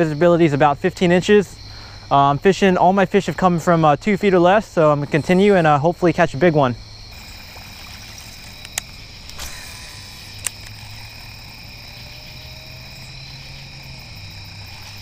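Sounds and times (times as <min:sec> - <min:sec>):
crickets trilling: 0:00.0 - 0:15.0
sharp clicks: 0:07.8 - 0:11.4.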